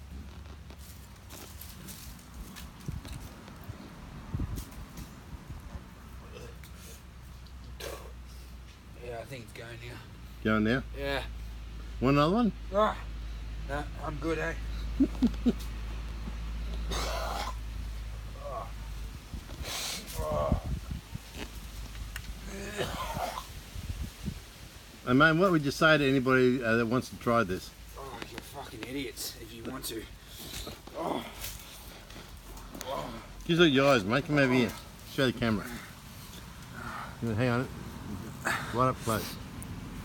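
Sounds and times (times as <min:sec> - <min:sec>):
faint rustling and shuffling: 0:00.0 - 0:10.5, 0:14.6 - 0:16.9, 0:17.6 - 0:40.0
man coughing harshly: 0:16.9 - 0:17.6, 0:22.5 - 0:23.5
hissing breath: 0:19.5 - 0:20.2
man groaning: 0:22.4 - 0:23.4, 0:30.9 - 0:31.4, 0:32.8 - 0:33.3, 0:38.2 - 0:38.8.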